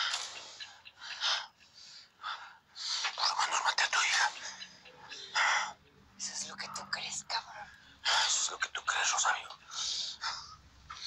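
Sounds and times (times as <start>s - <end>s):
hoarse whispered voices: 2.9s - 10.6s.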